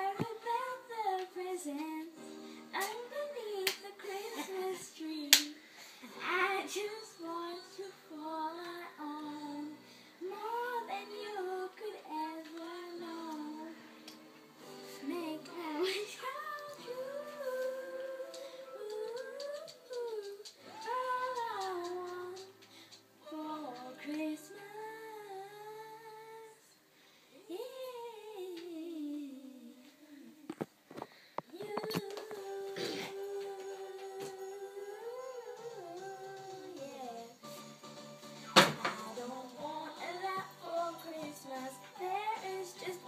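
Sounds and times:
young girl singing: 0:00.0 - 0:13.8, 0:14.9 - 0:22.6, 0:23.2 - 0:26.7, 0:27.4 - 0:30.5, 0:31.5 - 0:37.5, 0:38.8 - 0:43.0.

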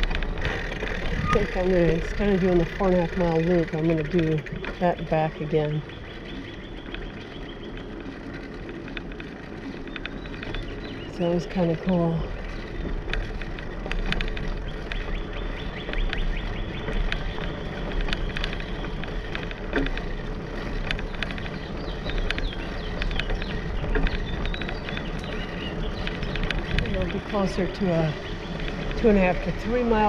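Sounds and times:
light clicks and rattles: 0:00.0 - 0:30.0
rolling tyre noise: 0:00.0 - 0:30.0
wind rumble on microphone: 0:00.0 - 0:30.0.

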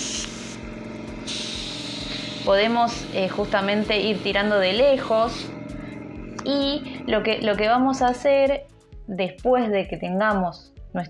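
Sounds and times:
airbrush spraying hiss: 0:00.0 - 0:07.0.

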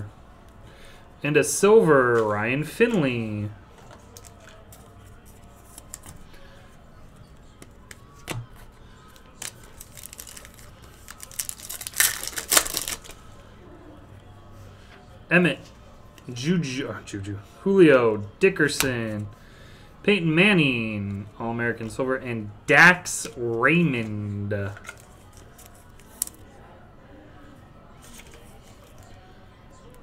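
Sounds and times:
sleeved trading card handling: 0:03.8 - 0:06.3, 0:07.6 - 0:13.2, 0:24.6 - 0:26.5, 0:28.0 - 0:29.1
foil wrapper tearing and crinkling: 0:09.4 - 0:13.2.

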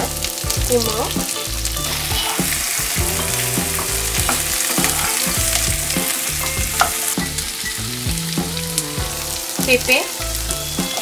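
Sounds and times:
vegetables sizzling in oil: 0:00.0 - 0:11.0
spoon scraping pan: 0:01.8 - 0:07.2.

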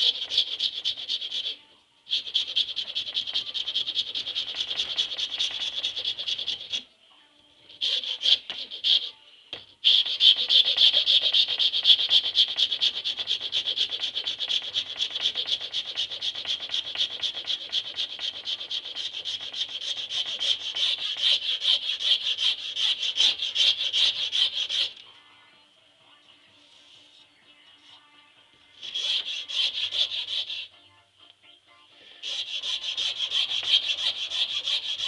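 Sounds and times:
hand file rasping on metal: 0:00.0 - 0:06.8, 0:07.7 - 0:09.2, 0:09.8 - 0:25.0, 0:28.8 - 0:30.7, 0:32.2 - 0:35.0.

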